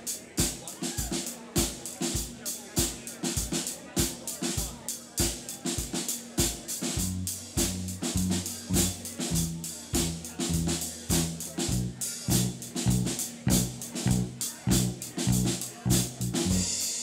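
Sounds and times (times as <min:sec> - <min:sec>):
drum kit beat: 0:00.0 - 0:17.0
bass guitar line: 0:07.0 - 0:16.8.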